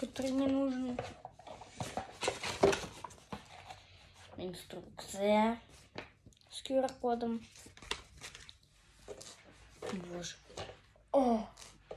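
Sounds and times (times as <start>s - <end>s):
paper and cardboard rustling: 0.0s - 6.2s, 7.2s - 11.9s.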